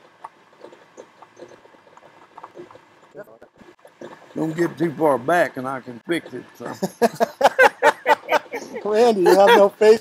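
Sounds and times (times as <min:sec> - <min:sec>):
lathe tool clicking and scraping metal: 0:03.8 - 0:09.5.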